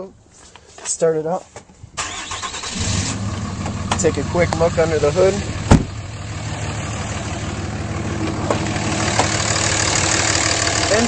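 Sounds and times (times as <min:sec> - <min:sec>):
diesel engine idling: 0:02.0 - 0:11.0.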